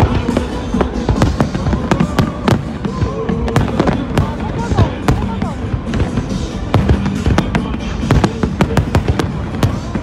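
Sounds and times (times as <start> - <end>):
fireworks bursting with sharp bangs: 0.0 - 10.0
music playing: 0.0 - 10.0.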